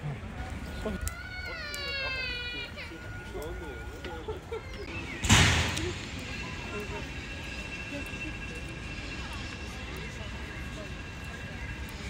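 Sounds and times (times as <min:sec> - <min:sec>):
faint voices of passers-by: 0:00.0 - 0:12.0
high-pitched whine: 0:05.2 - 0:12.0.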